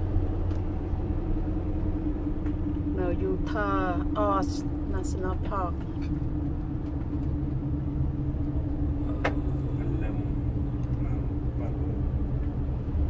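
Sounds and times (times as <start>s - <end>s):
car road rumble from cabin: 0.0s - 13.0s.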